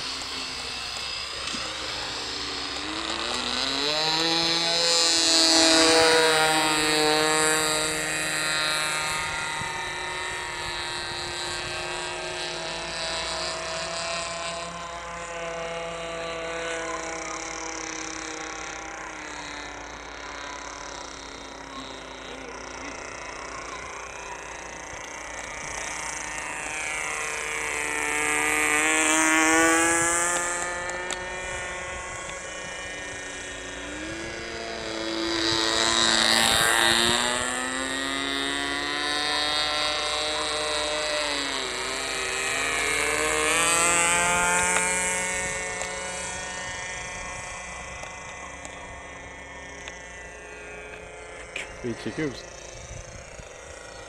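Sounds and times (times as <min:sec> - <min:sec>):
model airplane engine buzzing: 0:00.0 - 0:54.0.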